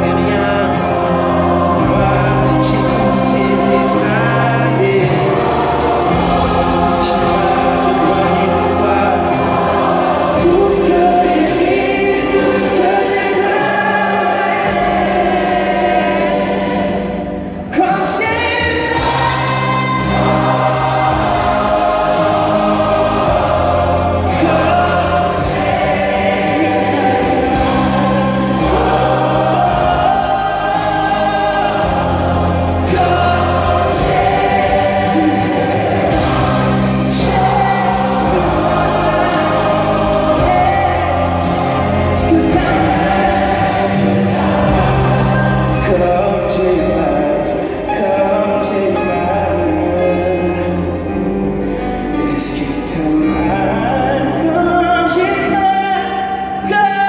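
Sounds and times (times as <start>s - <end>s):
choir singing a pop ballad: 0.0s - 57.0s
string orchestra: 0.0s - 57.0s.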